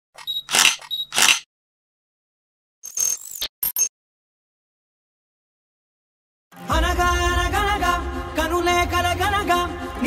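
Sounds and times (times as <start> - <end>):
camera focus beep: 0.2 - 1.5
camera shutter click: 0.2 - 1.5.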